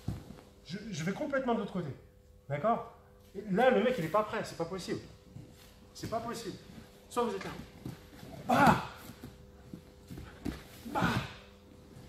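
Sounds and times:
soft thuds on mats: 0.0 - 0.5, 7.4 - 11.4
bare feet shuffling on mats: 0.0 - 0.6, 3.3 - 12.0.

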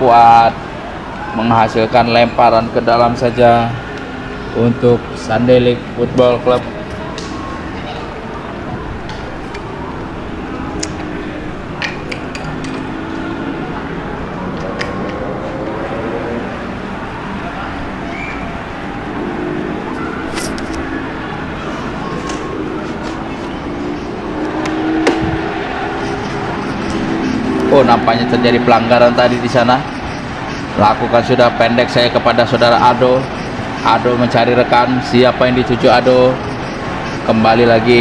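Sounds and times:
distant players calling: 0.0 - 38.0
steady background hum: 0.0 - 38.0.

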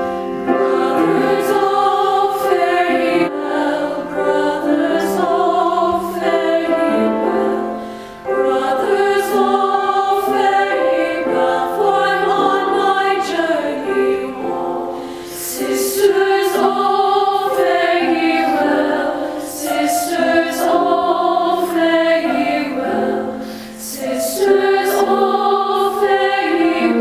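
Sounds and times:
choir singing: 0.0 - 27.0.

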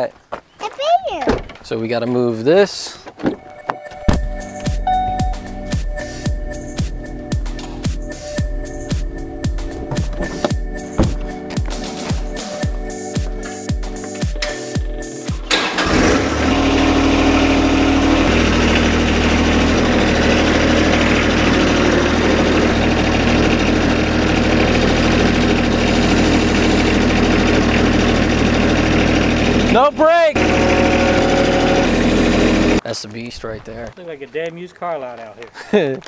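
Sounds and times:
background music with beat: 3.4 - 15.5
tractor diesel engine running: 4.0 - 13.5, 15.4 - 32.8.

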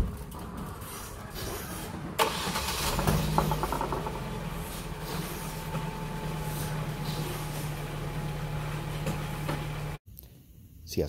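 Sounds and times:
car engine starting and idling: 0.0 - 10.0.

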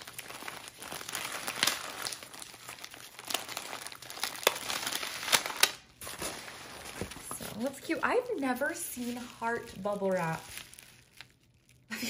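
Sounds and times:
bubble wrap crinkling: 0.0 - 12.0.

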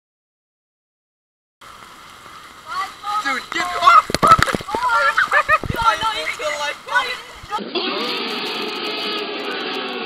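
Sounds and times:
people yelling together: 2.7 - 8.2.

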